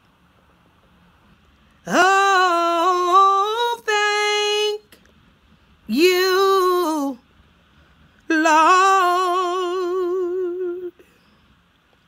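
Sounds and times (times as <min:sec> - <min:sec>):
woman singing unaccompanied: 0:01.8 - 0:05.1, 0:05.8 - 0:07.3, 0:08.2 - 0:11.1.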